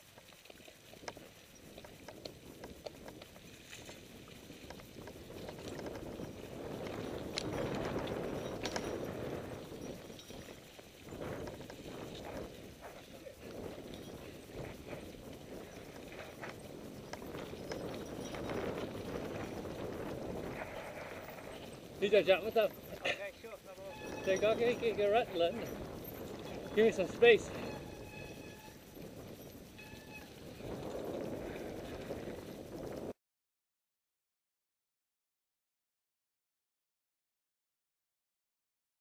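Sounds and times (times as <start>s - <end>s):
bike tyres rolling over dirt: 0.0s - 33.2s
bike rattles and knocks: 0.1s - 33.1s.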